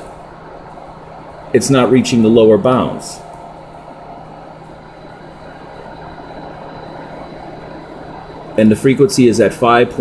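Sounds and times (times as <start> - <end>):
faint high whine: 0.0 - 10.0
low electrical hum: 0.0 - 10.0.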